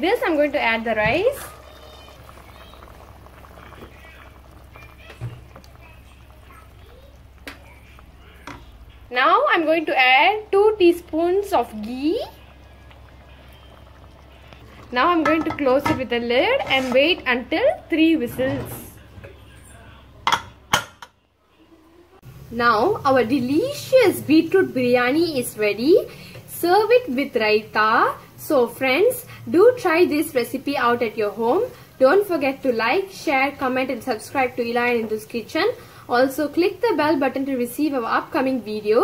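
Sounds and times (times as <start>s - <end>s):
water boiling and bubbling: 0.0s - 21.1s, 22.2s - 39.0s.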